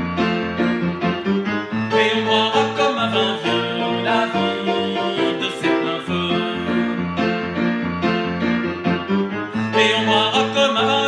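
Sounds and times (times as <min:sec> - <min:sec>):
piano chords with bass line: 0:00.0 - 0:11.0.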